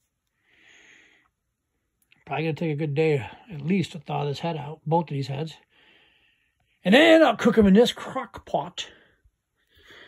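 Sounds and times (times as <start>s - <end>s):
faint breath: 0.3s - 1.4s, 5.6s - 6.8s, 8.9s - 10.0s.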